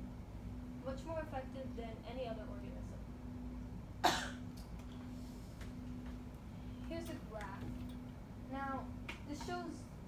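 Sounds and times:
person coughing: 4.0s - 4.5s.

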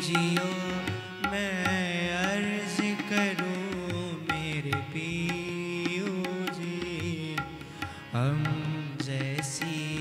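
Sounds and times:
harmonium: 0.0s - 10.0s
man singing: 0.0s - 10.0s.

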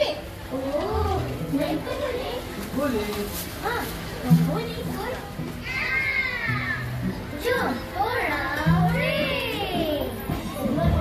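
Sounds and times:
background music: 0.0s - 11.0s
busy crowd: 0.0s - 11.0s
children calling out: 5.6s - 7.2s.

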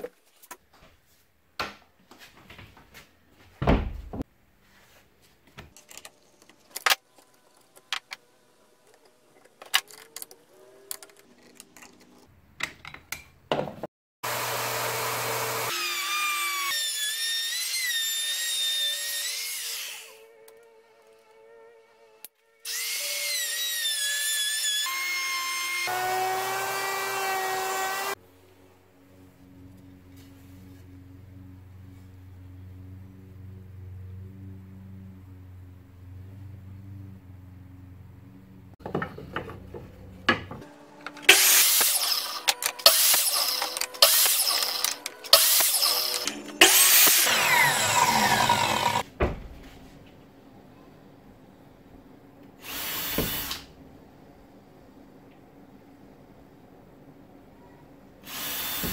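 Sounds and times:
router motor whine: 14.2s - 16.8s, 40.7s - 49.0s
miter saw cutting wood: 14.2s - 21.2s, 22.7s - 28.2s, 40.6s - 49.0s
low hum: 28.2s - 38.8s.

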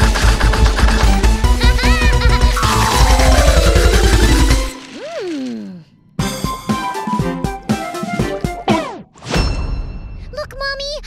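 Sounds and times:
upbeat music: 2.4s - 5.1s
cartoon chomping and crunching: 2.5s - 5.7s
swooping glide: 2.6s - 5.4s
long falling tone: 2.6s - 5.9s.

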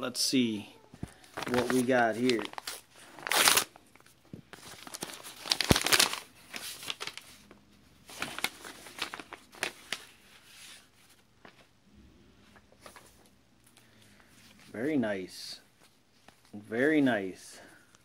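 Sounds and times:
paper rustling and crinkling: 0.9s - 11.8s, 12.4s - 14.8s
envelope tearing: 1.2s - 3.8s, 4.6s - 7.2s.

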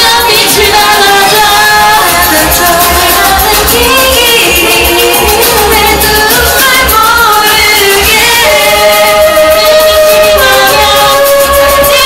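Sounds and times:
backing track with beat: 0.0s - 12.0s
woman singing pop song: 0.0s - 12.0s.

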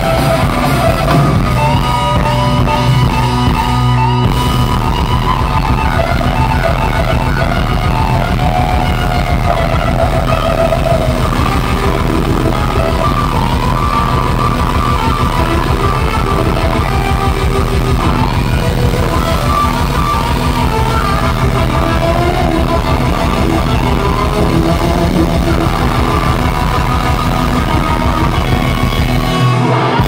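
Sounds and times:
electric guitar lead: 0.0s - 30.0s
hard rock band playing: 0.0s - 30.0s.

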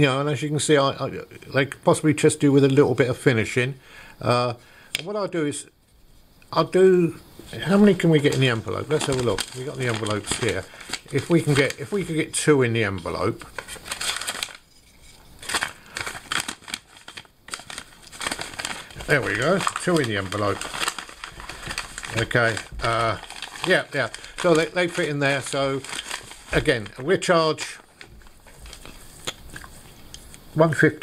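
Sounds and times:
paper envelope crinkling: 7.5s - 30.3s.

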